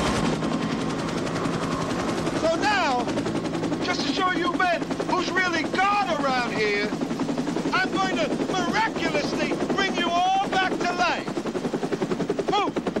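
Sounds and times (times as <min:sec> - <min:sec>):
rapid rattling pulse: 0:00.0 - 0:13.0
man talking: 0:02.4 - 0:03.2, 0:03.8 - 0:07.0, 0:07.7 - 0:11.4, 0:12.5 - 0:12.8.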